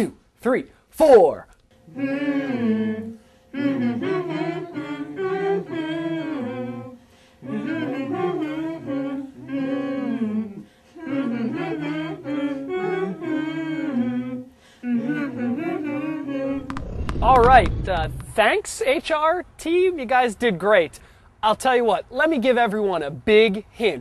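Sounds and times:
group of people humming: 1.9s - 16.8s.

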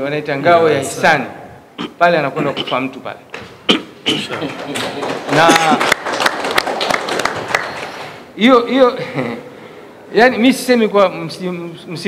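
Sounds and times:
audience applauding: 4.4s - 8.3s.

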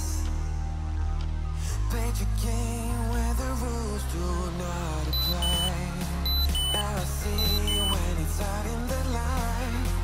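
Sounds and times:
pop music: 0.0s - 10.0s
timer countdown beeps: 5.1s - 8.1s.

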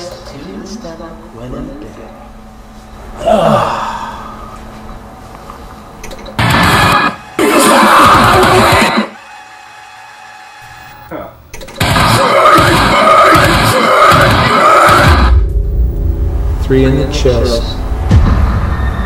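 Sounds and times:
dramatic music: 6.4s - 11.0s, 11.8s - 19.0s
voices: 12.0s - 15.3s.

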